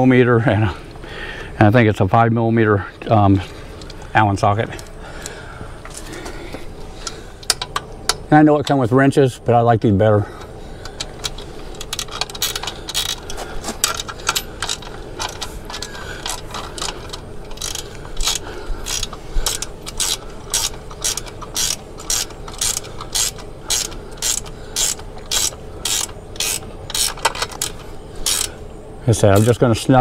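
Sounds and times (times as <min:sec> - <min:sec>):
ratchet wrench clicking: 0:07.0 - 0:08.8, 0:10.8 - 0:28.6.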